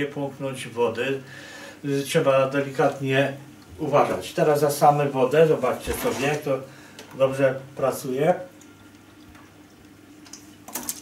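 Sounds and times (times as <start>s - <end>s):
water trickling into bucket: 8.5s - 11.0s.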